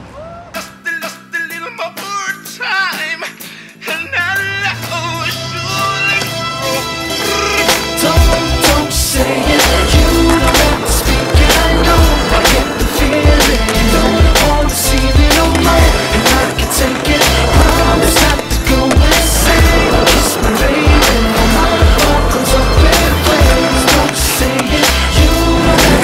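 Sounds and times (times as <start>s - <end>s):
hip-hop music: 0.5s - 26.0s
skateboard wheels rolling on concrete: 3.9s - 26.0s
skateboard knocking and grinding: 5.8s - 26.0s.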